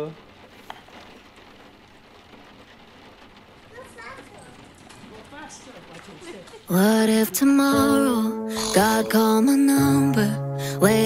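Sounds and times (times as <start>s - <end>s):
soft rain patter: 0.0s - 11.0s.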